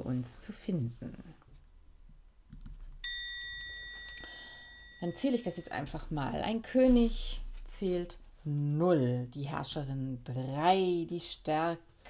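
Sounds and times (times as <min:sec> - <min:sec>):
bright metallic chime: 0:03.0 - 0:06.0.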